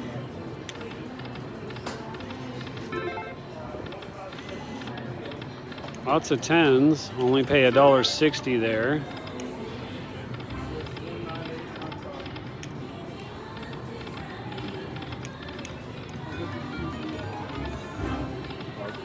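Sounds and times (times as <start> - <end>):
casino floor din: 0.6 - 19.0.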